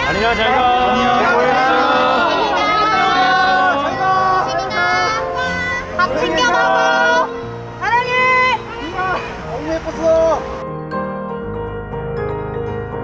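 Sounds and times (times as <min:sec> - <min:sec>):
fans calling and shouting: 0:00.0 - 0:10.6
soft piano music: 0:00.0 - 0:13.0.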